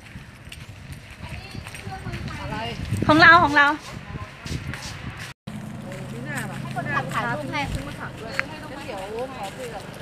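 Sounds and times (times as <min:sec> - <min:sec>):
footsteps on dirt: 0:00.0 - 0:10.0
faint voices talking: 0:05.8 - 0:10.0.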